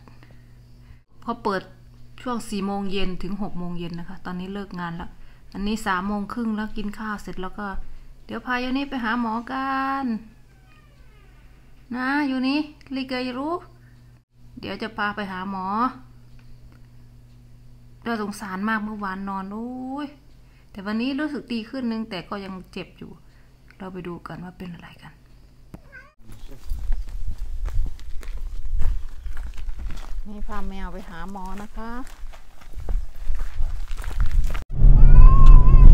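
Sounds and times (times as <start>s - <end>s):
cat meowing faintly: 10.3s - 11.7s, 25.8s - 26.2s, 34.8s - 35.9s
footsteps: 26.2s - 34.6s
wind rumbling on microphone: 26.4s - 30.8s, 31.4s - 35.9s.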